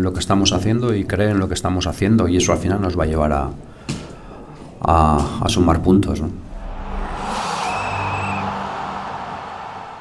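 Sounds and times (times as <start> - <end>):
noisy whoosh: 6.3 - 10.0
low hum: 6.4 - 9.2.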